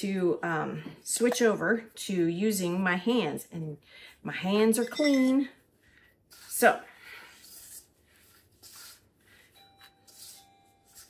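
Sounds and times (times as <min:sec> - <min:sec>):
hands kneading dough: 0:04.4 - 0:11.0.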